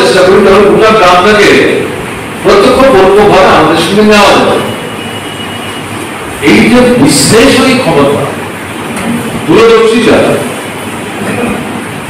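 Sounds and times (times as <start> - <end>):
man speaking into microphone: 0.0 - 4.8, 6.4 - 8.5, 9.4 - 10.6
steady rumbling background noise: 0.0 - 12.0.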